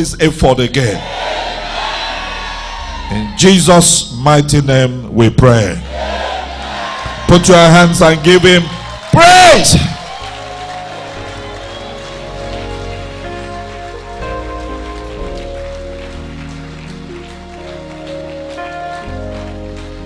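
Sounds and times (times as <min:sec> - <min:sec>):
church band sustained chords: 0:00.0 - 0:20.0
congregation clapping: 0:05.8 - 0:20.0.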